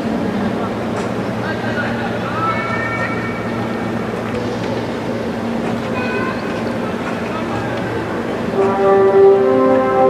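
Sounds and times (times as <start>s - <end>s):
distant voices: 0.0s - 10.0s.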